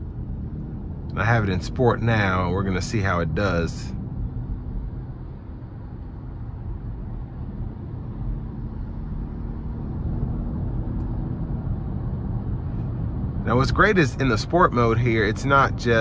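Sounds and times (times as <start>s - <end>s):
car engine accelerating: 0.0s - 16.0s
road noise: 0.0s - 16.0s.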